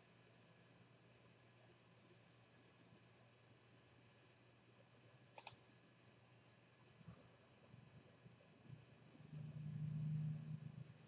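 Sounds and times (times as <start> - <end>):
computer mouse clicks: 5.4 - 5.7.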